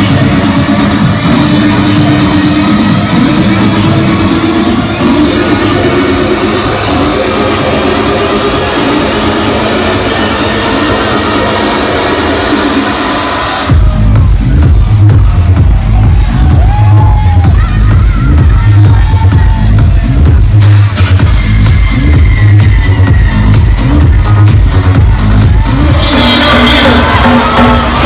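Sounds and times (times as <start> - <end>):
electronic dance music: 0.0 - 28.0
heavy bass drop: 0.0 - 28.0.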